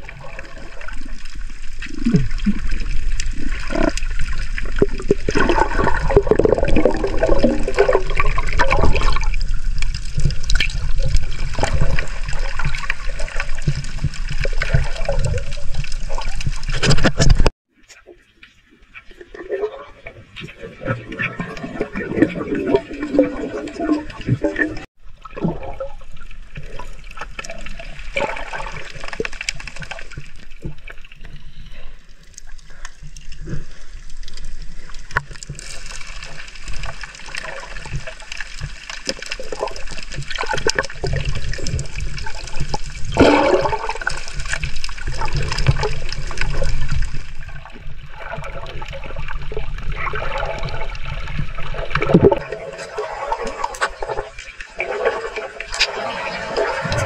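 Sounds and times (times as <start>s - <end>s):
underwater churning and gurgling: 0.0s - 17.5s, 18.2s - 57.0s
clicks and crackles: 0.4s - 19.2s, 26.1s - 54.7s.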